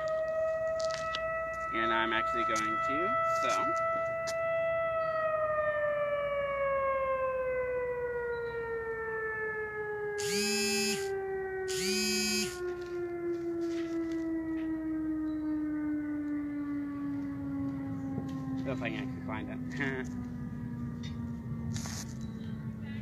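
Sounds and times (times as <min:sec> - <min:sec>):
warning siren winding down: 0:00.0 - 0:23.0.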